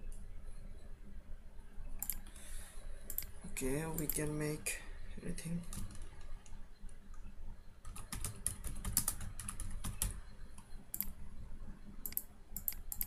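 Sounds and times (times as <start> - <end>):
computer keyboard typing: 2.0 - 2.3, 3.1 - 4.3, 5.6 - 6.6, 7.8 - 11.1, 12.0 - 13.0.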